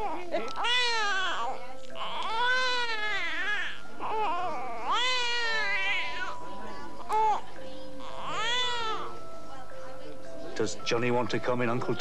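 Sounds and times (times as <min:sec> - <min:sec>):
baby crying: 0:00.0 - 0:09.2.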